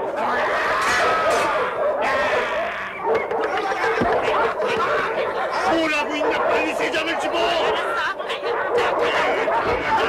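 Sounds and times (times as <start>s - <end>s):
cartoon voices snickering and laughing: 0.0s - 5.9s.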